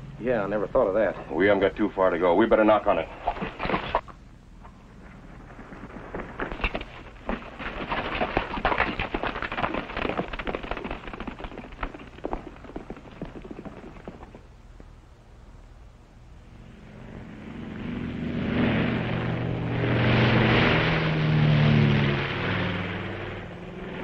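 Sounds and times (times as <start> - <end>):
horse hooves on dirt: 2.5 - 15.1.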